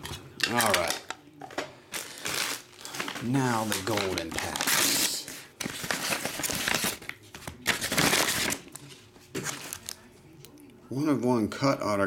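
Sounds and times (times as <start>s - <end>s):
paper envelopes rustling: 1.9s - 10.0s.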